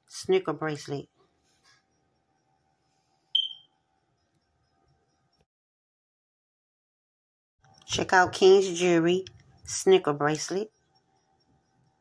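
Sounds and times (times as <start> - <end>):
short high-pitched beep: 3.4 - 3.7.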